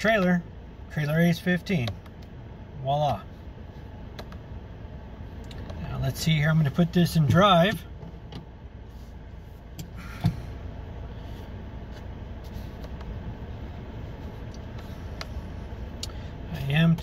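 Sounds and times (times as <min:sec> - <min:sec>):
car engine idling: 0:00.0 - 0:17.0
transmission shift clunk: 0:07.8 - 0:08.7, 0:09.7 - 0:10.6.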